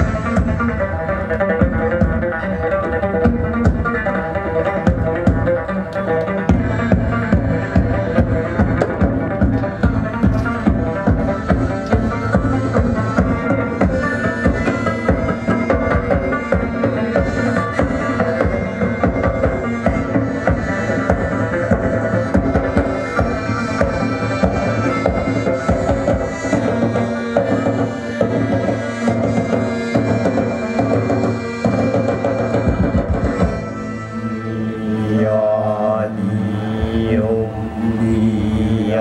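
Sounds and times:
drums beating busy rhythm: 0.0s - 34.0s.

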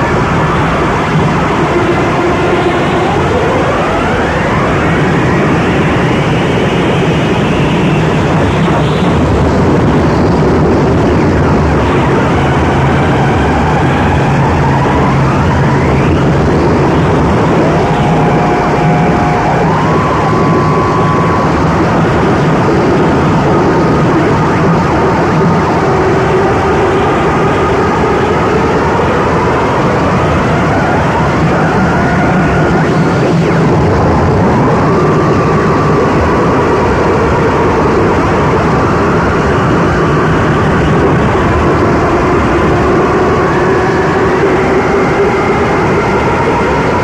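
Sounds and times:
whistling tones sweeping: 0.0s - 9.3s, 11.5s - 38.5s
distorted electronic noise: 0.0s - 47.0s.

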